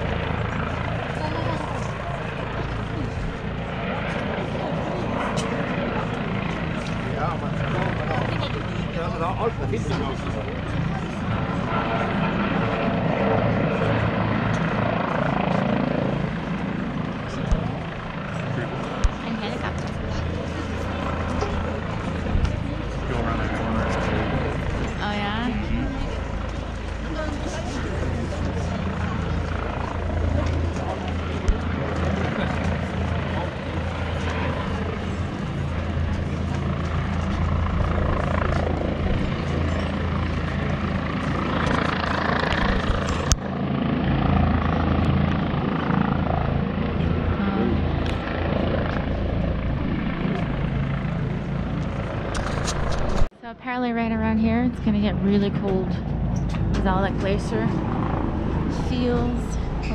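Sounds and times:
steady low drone: 0.0 - 59.9
people talking indistinctly: 1.0 - 15.9, 16.8 - 36.2, 53.4 - 59.9.

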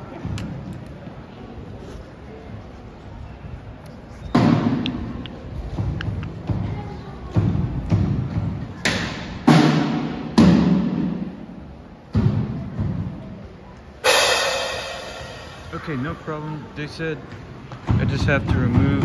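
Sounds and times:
drum hits echoing in hall: 7.3 - 13.4, 14.0 - 16.2.

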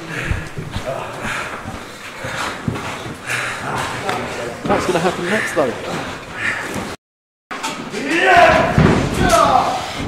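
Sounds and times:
voices shouting: 7.9 - 9.9.

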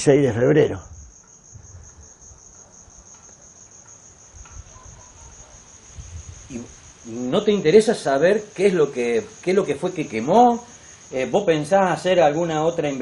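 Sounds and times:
cricket trilling: 0.0 - 13.0.

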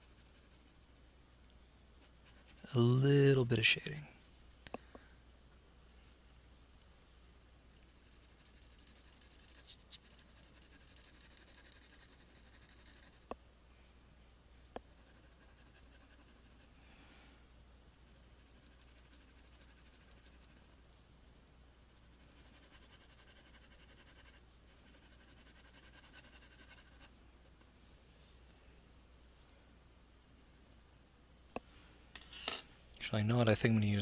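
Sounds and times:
pencil scratching on paper: 2.0 - 2.8, 7.9 - 13.2, 14.9 - 16.6, 18.4 - 20.6, 22.1 - 27.1.

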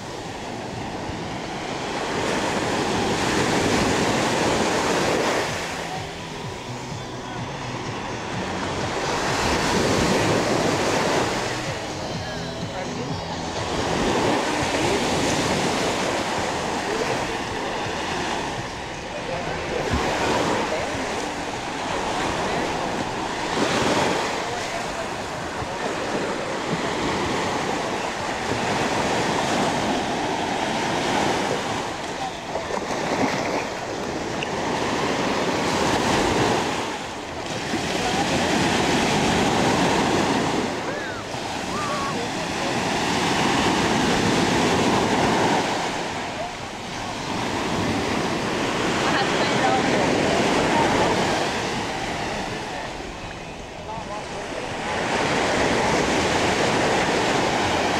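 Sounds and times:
surf washing onto sandy beach: 0.0 - 12.2, 12.8 - 57.9
beachgoers' voices: 0.0 - 57.9.

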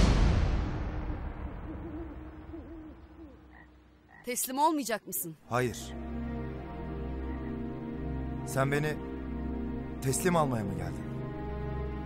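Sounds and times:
night woodland ambience: 1.0 - 12.0
soft owl hoots: 1.6 - 3.8.

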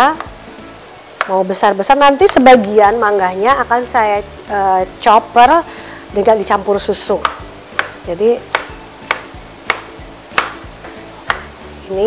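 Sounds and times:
background music: 0.0 - 12.0
knife knocking on cutting board: 7.2 - 11.5.

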